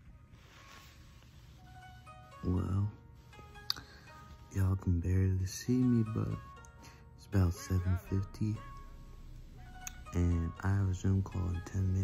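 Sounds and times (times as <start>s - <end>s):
faint soft steady tones: 0.0s - 12.0s.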